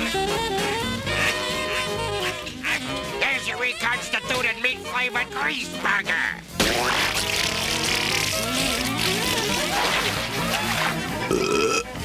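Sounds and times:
cartoon music: 0.0s - 12.0s
long burp-like cartoon noise: 11.2s - 12.0s.

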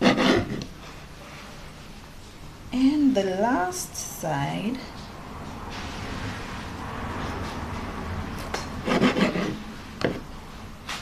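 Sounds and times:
serrated knife sawing bread: 0.0s - 0.7s, 8.8s - 9.6s.

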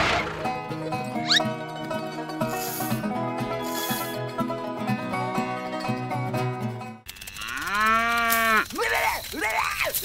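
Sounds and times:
cow mooing: 7.4s - 8.6s.

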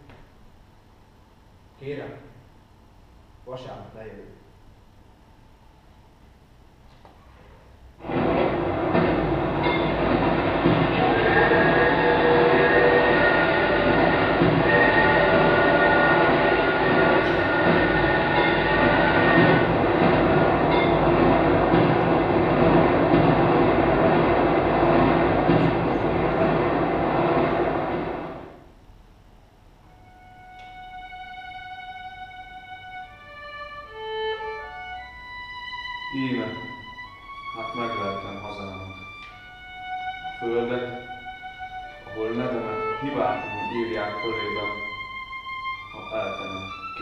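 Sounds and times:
high wheel squeal: 8.0s - 22.4s
train rolling on rails: 8.0s - 28.7s.

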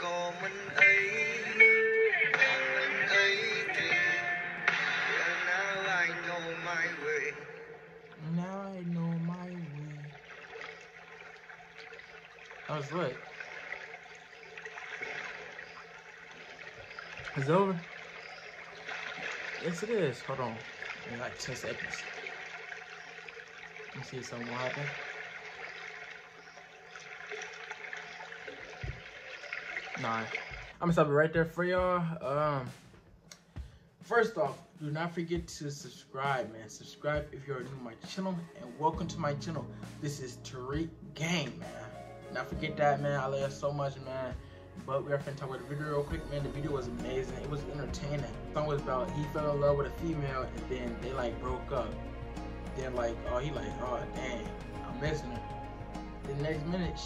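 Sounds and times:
pop song: 0.0s - 10.2s, 44.4s - 57.0s
gentle water lapping: 0.0s - 30.8s, 32.7s - 57.0s.

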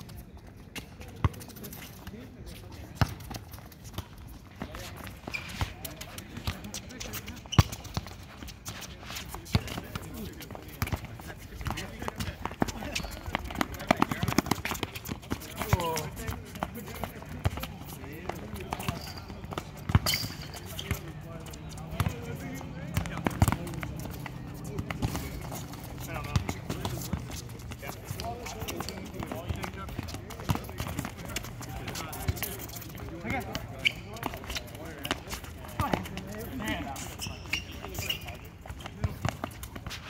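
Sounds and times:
footfalls of players running: 0.0s - 40.0s
ball bouncing on hard court: 3.0s - 8.2s, 9.5s - 21.1s, 21.9s - 40.0s
players calling out: 9.2s - 39.2s.

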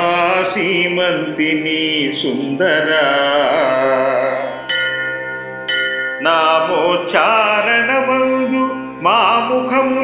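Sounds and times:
bell struck and ringing: 4.6s - 7.0s.

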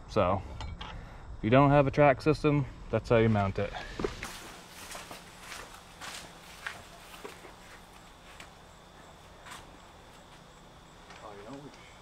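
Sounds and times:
footsteps on asphalt: 3.8s - 10.5s.

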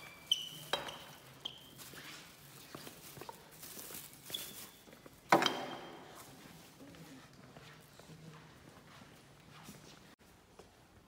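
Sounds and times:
footsteps on marble floor: 0.0s - 11.0s.

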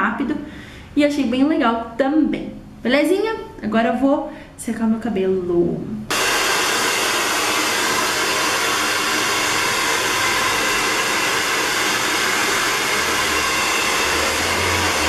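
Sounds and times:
hair dryer running: 6.1s - 15.0s.

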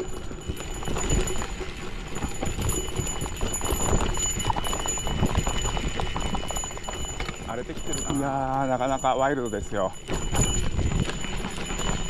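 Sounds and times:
bike rattling: 0.0s - 12.0s
bike tyres rolling on dirt: 0.0s - 12.0s.

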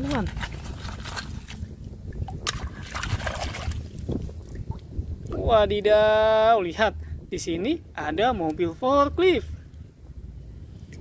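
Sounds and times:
water splashing and dripping: 0.0s - 5.4s.

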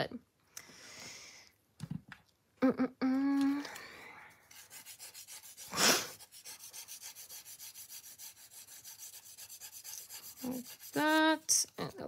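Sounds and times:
nail file rubbing nail: 4.4s - 11.7s.

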